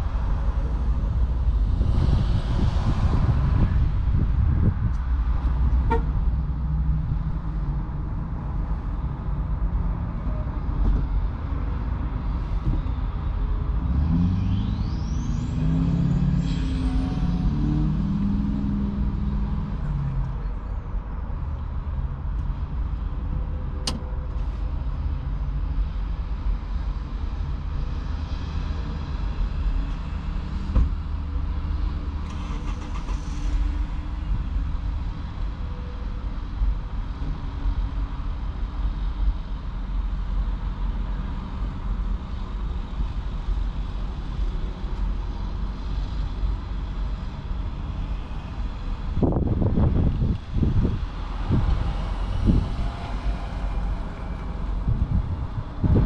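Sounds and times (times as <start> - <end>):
engine wavering in pitch: 13.6 - 20.8.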